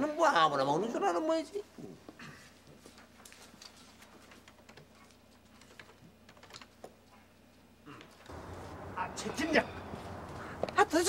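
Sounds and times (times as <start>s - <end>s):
faint keyboard clicks: 4.3s - 7.2s.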